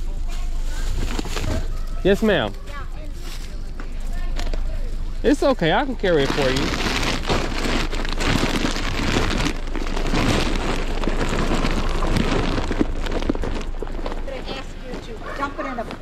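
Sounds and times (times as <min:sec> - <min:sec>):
grocery bags rustling and crinkling: 0:00.0 - 0:16.0.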